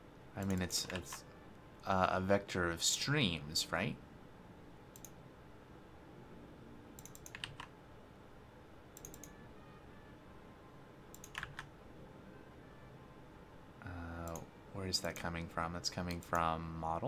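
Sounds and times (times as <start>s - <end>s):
faint typing on keyboard: 0.4s - 1.3s, 4.9s - 5.2s, 7.0s - 7.8s, 8.9s - 9.4s, 11.1s - 11.7s, 14.1s - 16.6s.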